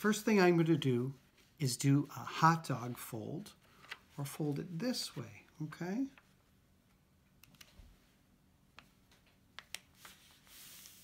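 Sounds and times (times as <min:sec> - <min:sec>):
paper rustling: 0:09.7 - 0:11.0.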